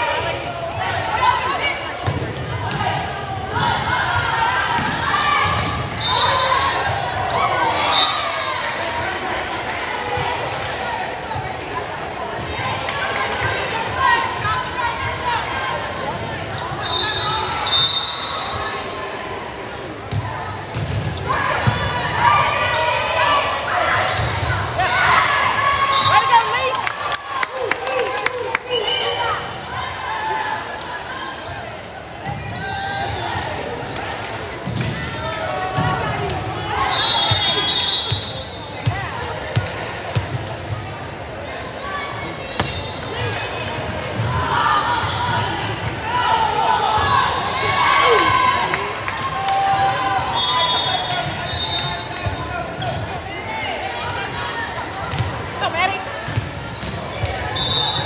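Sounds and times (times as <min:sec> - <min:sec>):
players and spectators shouting: 0:00.0 - 0:19.6, 0:21.2 - 0:31.4, 0:41.7 - 0:58.0
referee's whistle: 0:05.9 - 0:07.0, 0:07.8 - 0:08.3, 0:16.8 - 0:18.9, 0:25.8 - 0:26.3, 0:36.8 - 0:38.8, 0:50.2 - 0:52.4, 0:57.5 - 0:58.0.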